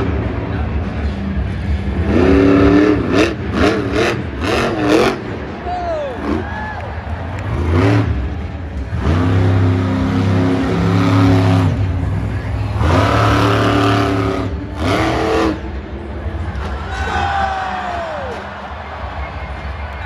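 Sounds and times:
truck engine revving: 0.0 - 17.0.

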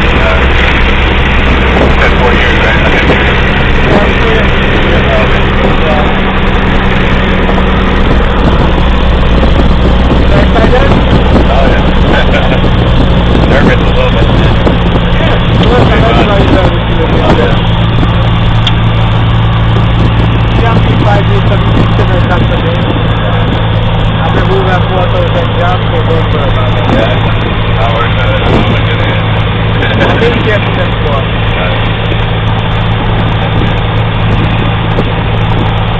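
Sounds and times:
propeller plane engine: 0.0 - 35.9.

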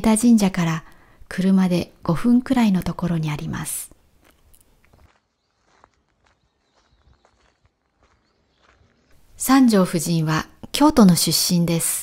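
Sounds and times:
footsteps on gravel: 4.2 - 9.3.

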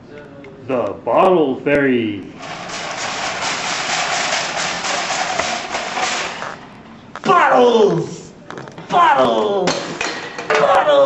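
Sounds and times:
shopping cart rolling and rattling: 2.4 - 6.6.

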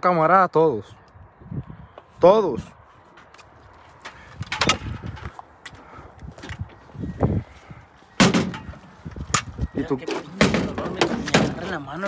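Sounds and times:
loud bang: 8.2 - 8.7.

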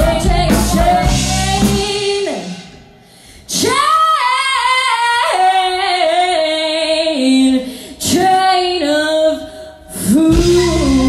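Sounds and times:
woman singing into a microphone: 0.0 - 2.8, 3.4 - 11.0.

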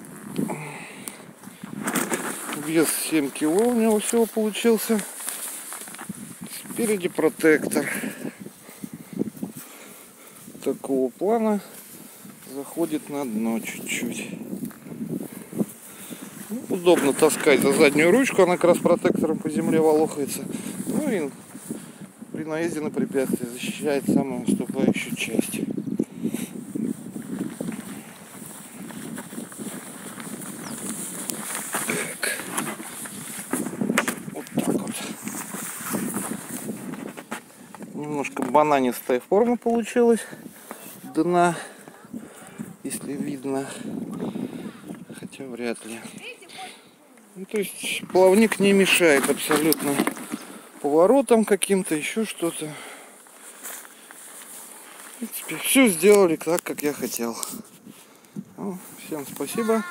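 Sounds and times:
outdoor background hiss: 0.0 - 59.9
fabric rubbing and rustling: 1.6 - 7.6, 26.7 - 38.6, 48.2 - 51.0
footsteps on grass: 1.8 - 7.0, 26.7 - 38.6, 40.4 - 42.8, 53.2 - 56.4.

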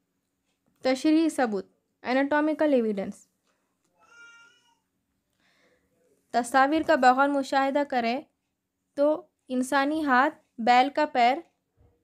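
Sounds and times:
faint high-pitched animal cry: 4.0 - 4.8.

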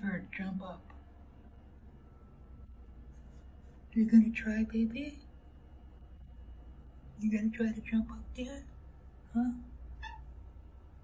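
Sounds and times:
cat high-pitched squeak: 10.0 - 10.4.

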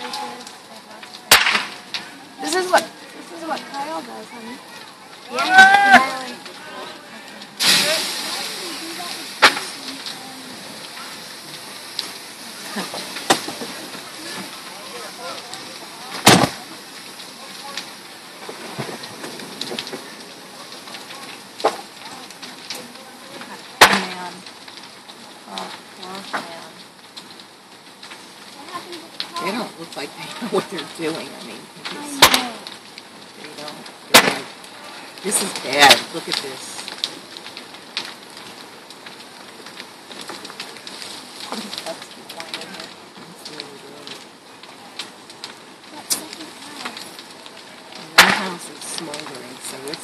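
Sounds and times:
fire crackling: 0.0 - 50.0
sharp loud pops: 1.3 - 1.8, 9.4 - 9.8, 16.2 - 16.6, 34.1 - 34.5, 48.2 - 48.6.

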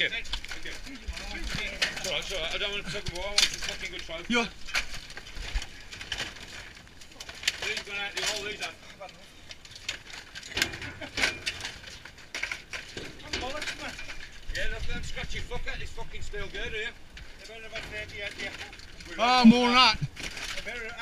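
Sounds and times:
wooden debris clattering in metal skip: 0.0 - 21.0.

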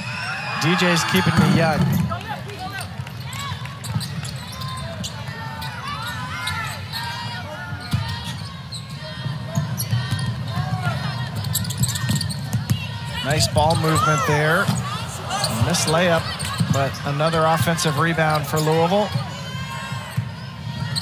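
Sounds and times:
sneakers squeaking: 1.0 - 21.0.

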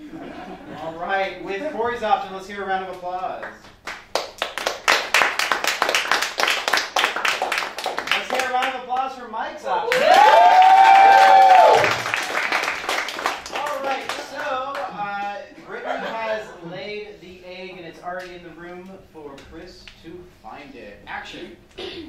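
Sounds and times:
audience applauding: 3.8 - 8.7, 9.9 - 14.9
person whooping: 9.9 - 12.0.

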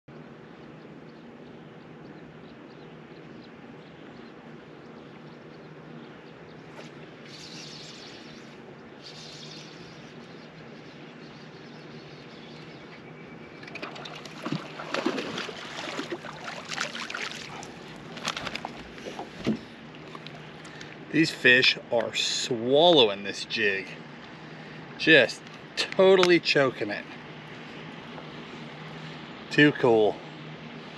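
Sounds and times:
fish splashing at surface: 13.7 - 19.3.

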